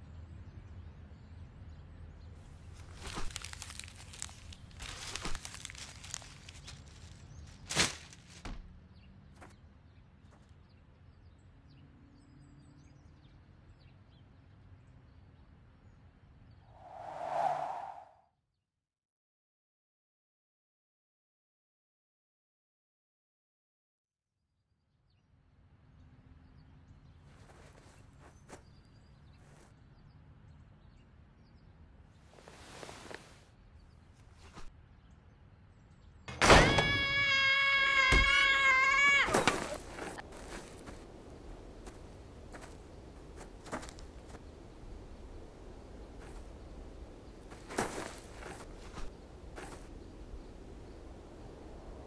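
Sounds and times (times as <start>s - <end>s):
whoosh: 16.8s - 18.2s.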